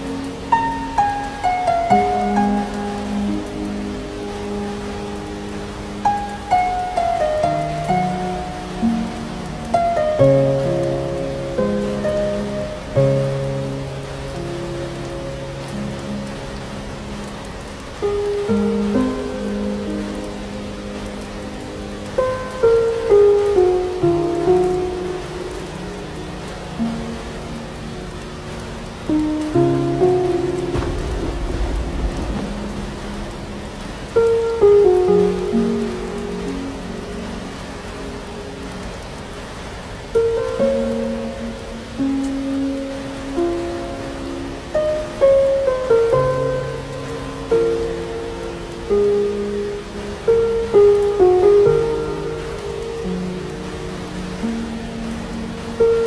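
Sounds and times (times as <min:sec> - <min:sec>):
slow gentle instrumental music: 0:00.0 - 0:56.0
steady rain: 0:00.0 - 0:56.0
low rumble of thunder: 0:30.2 - 0:35.0.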